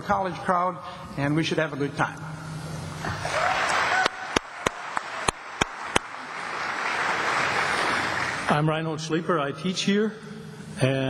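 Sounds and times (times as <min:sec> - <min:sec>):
audience applauding: 0:03.1 - 0:08.5
sharp single claps: 0:04.0 - 0:06.2.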